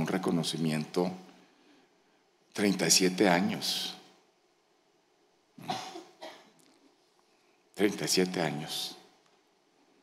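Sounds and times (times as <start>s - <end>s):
person coughing: 5.6s - 6.6s.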